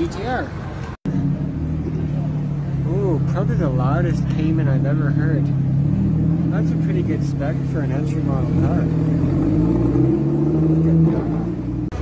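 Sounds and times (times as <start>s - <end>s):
car engine running at low revs: 1.1s - 12.0s.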